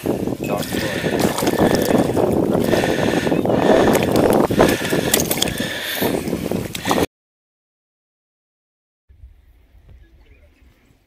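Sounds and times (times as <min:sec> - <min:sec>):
wind on microphone: 0:00.0 - 0:07.1, 0:09.1 - 0:11.0
water splashing: 0:00.1 - 0:07.0.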